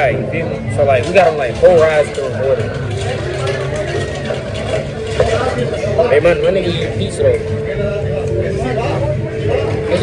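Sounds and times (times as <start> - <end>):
background chatter: 0.0 - 10.0.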